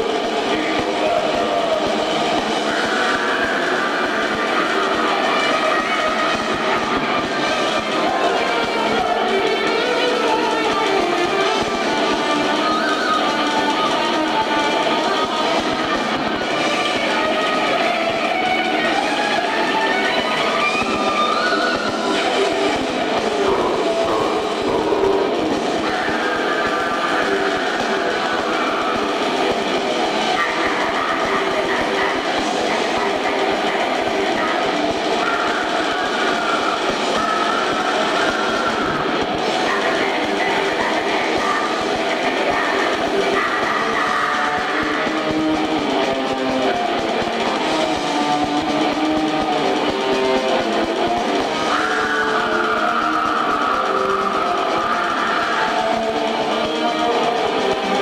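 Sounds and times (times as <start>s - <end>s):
crowd shouting and cheering: 0.0s - 58.0s.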